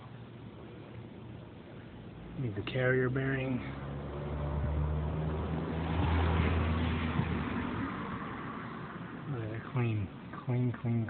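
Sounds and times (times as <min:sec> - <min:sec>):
vehicle engine passing by: 0:03.1 - 0:09.3.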